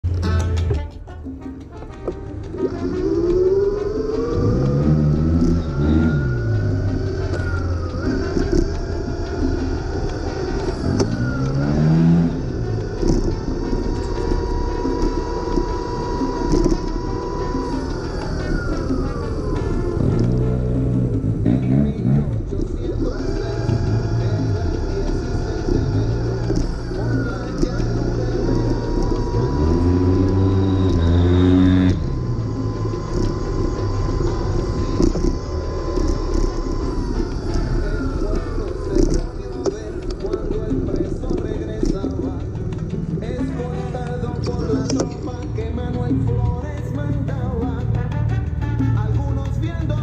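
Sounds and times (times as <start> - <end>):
motorcycle engines passing: 1.3 - 50.0
motorcycle engine revving: 1.4 - 50.0.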